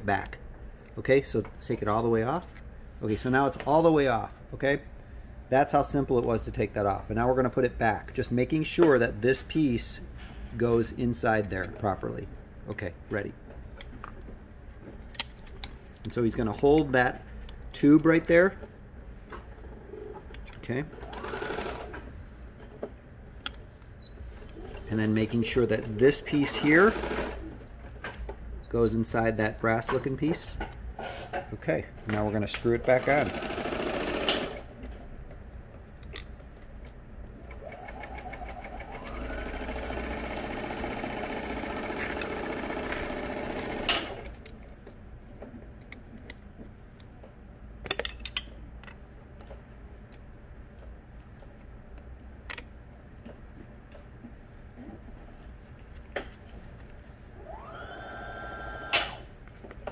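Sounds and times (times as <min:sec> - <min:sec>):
sewing machine motor droning: 0:21.0 - 0:22.0, 0:25.9 - 0:27.5, 0:32.9 - 0:34.7, 0:37.4 - 0:44.3, 0:57.4 - 0:59.2.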